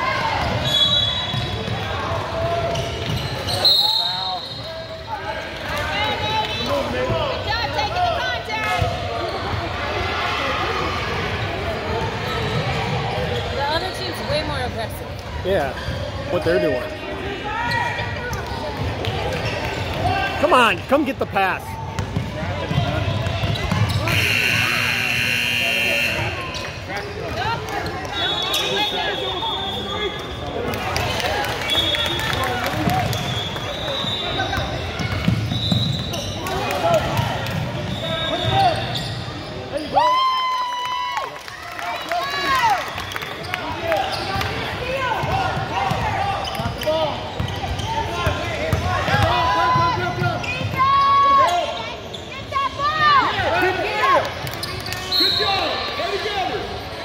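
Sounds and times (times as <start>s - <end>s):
echoing crowd voices: 0.0s - 57.0s
shoe squeaks: 33.2s - 36.5s, 37.9s - 40.0s, 50.4s - 52.7s.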